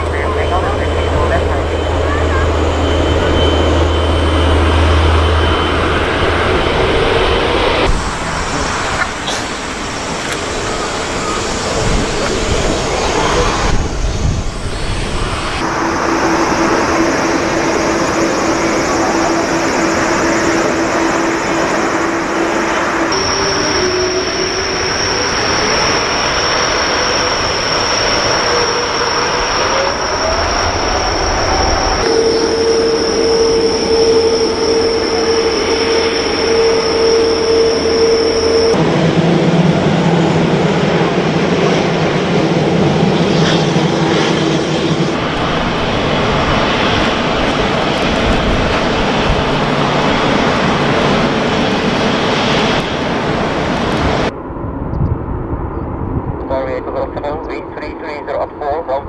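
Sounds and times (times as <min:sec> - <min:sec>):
jet engines roaring with whine: 0:00.0 - 0:59.0.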